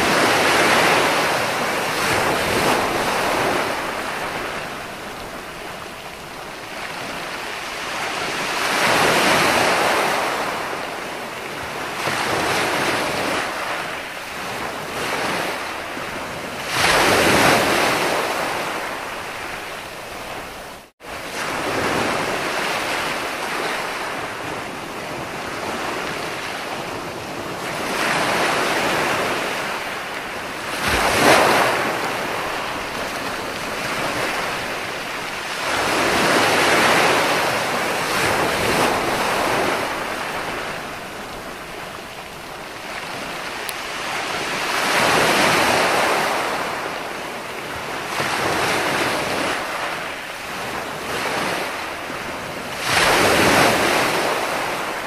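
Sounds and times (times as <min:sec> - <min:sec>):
sea waves breaking on beach: 0:00.0 - 0:55.0.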